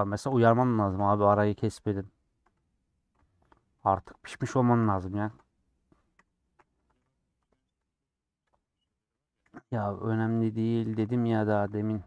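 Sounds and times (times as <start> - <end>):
keyboard and mouse clicks: 5.3 - 9.8.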